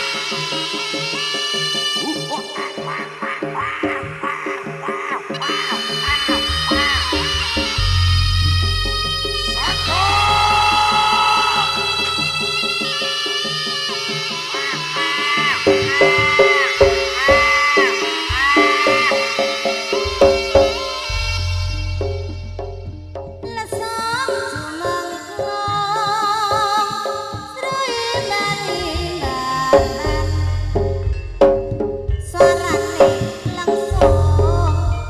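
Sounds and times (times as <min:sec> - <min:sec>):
reedy wind instrument: 0:05.3 - 0:25.5
ringing pitched percussion: 0:05.3 - 0:35.0
low drum beats: 0:15.7 - 0:24.8, 0:28.7 - 0:35.0.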